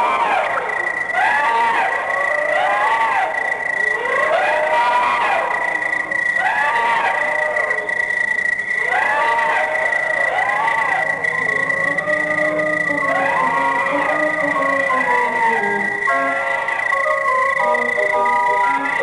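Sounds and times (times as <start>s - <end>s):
steady high whistle-like tone: 0.0s - 19.0s
electronic swooping tones: 10.4s - 16.5s.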